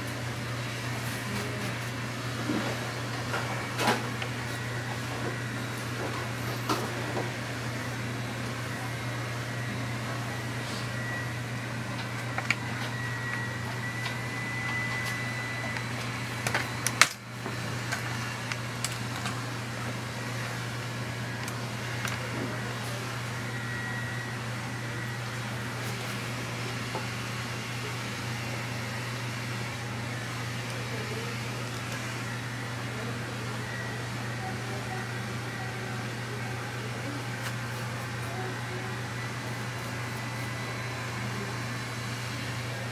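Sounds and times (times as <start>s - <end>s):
air conditioning unit drone: 0.0s - 42.9s
machine hum with hiss: 0.0s - 42.9s.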